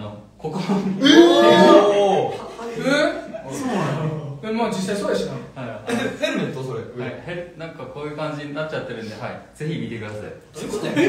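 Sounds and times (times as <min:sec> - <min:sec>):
men talking and chuckling: 0:10.6 - 0:11.0.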